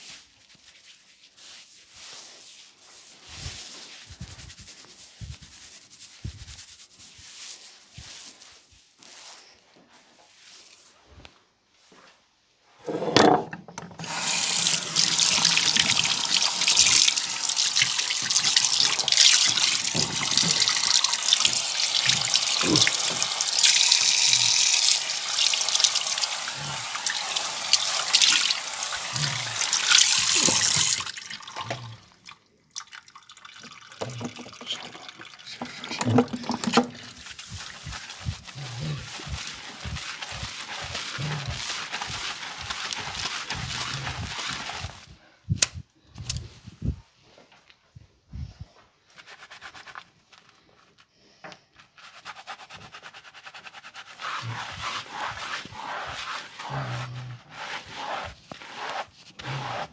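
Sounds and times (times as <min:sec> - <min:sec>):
tap water running into sink: 0:13.2 - 0:32.0, 0:32.7 - 0:38.4.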